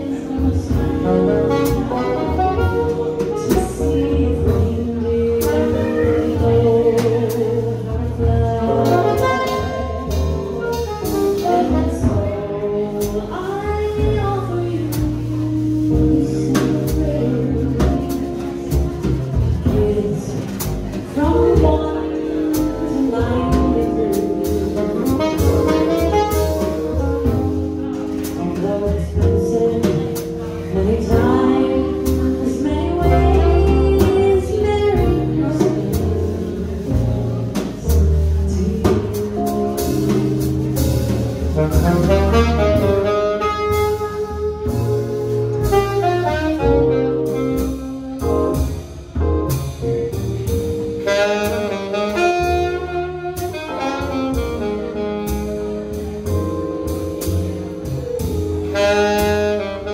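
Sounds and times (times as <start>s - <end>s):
woman singing: 0.0s - 19.0s, 19.6s - 26.4s, 28.2s - 40.2s
drums with cymbal strokes: 0.0s - 59.9s
keyboard playing: 0.0s - 59.9s
walking upright bass: 0.0s - 59.9s
saxophone melody: 0.1s - 20.3s, 21.2s - 59.9s.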